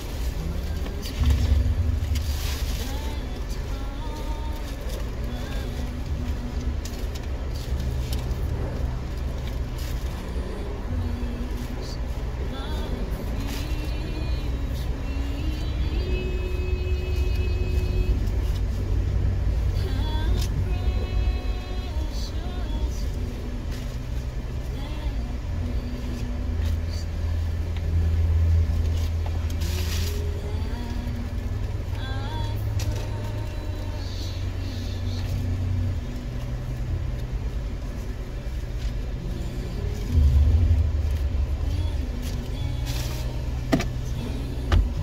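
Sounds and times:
car engine idling: 0.0s - 45.0s.

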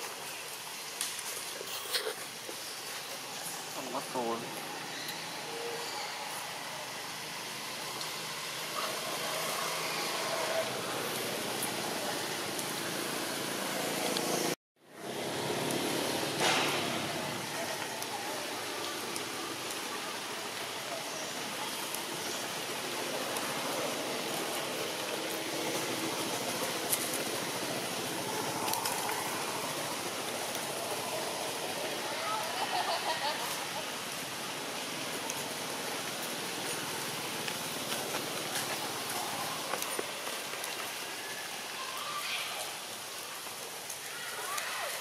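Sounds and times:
outdoor background hiss: 0.0s - 45.0s.

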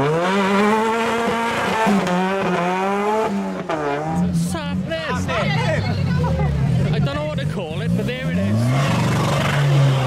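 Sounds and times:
car engine revving: 0.0s - 10.0s
crowd voices and shouts: 4.0s - 9.8s.

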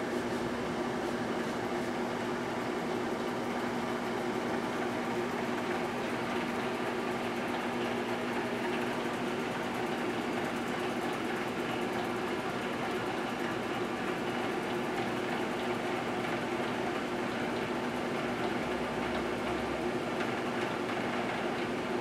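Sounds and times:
microwave oven humming: 0.0s - 22.0s.

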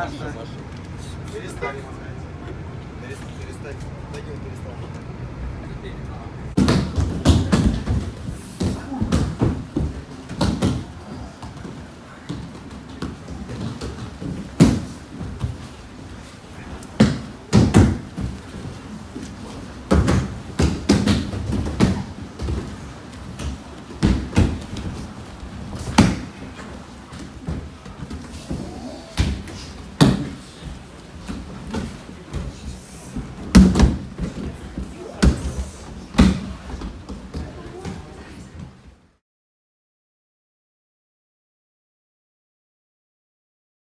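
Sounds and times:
bodies thudding on mats: 6.6s - 38.1s.

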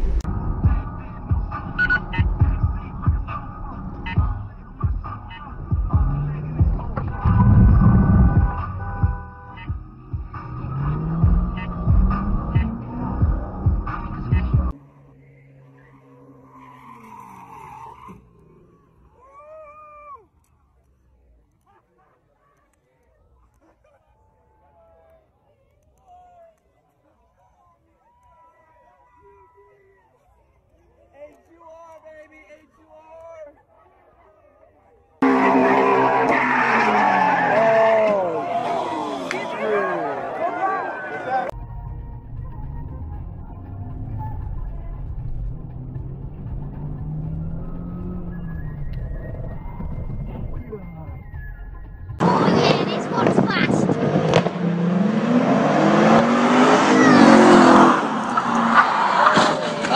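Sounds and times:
car engine accelerating: 0.0s - 19.2s, 35.2s - 59.9s
tires squealing: 0.0s - 20.1s, 35.2s - 59.9s
music: 0.3s - 14.7s, 41.6s - 52.2s.

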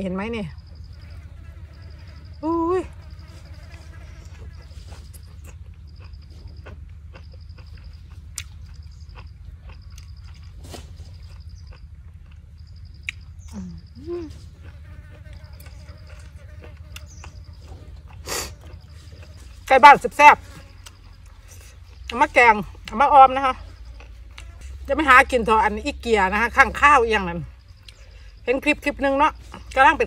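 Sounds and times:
insect chirping trills: 0.0s - 30.0s
steady low hum: 0.0s - 30.0s
wet chewing: 4.3s - 19.7s
person murmuring: 13.6s - 14.4s.

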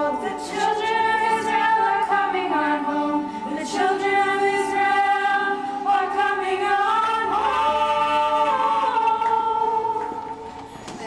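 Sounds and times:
women singing together: 0.0s - 11.0s.

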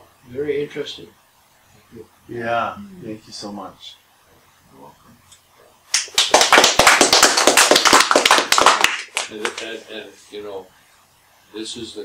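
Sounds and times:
people applauding: 5.9s - 9.7s.

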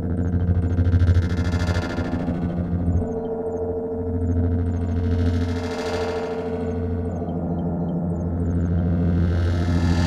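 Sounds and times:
low bass drone: 0.0s - 10.0s.

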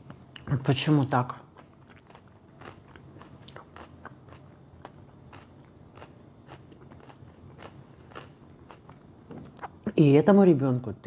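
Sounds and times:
person chewing food: 1.4s - 9.8s.

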